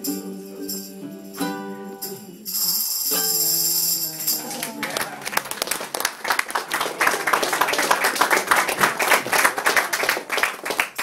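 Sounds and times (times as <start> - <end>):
voices: 0.0 - 10.3
people clapping: 2.5 - 11.0.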